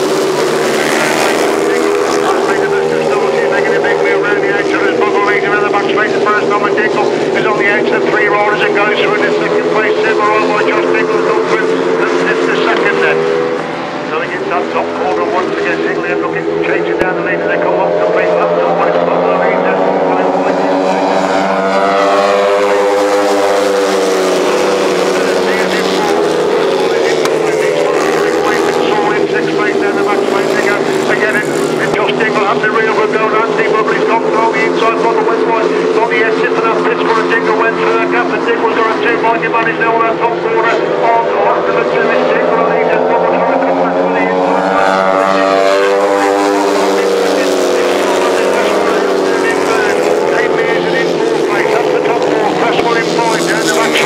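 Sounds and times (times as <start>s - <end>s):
motorcycles revving and passing: 0.0s - 54.0s.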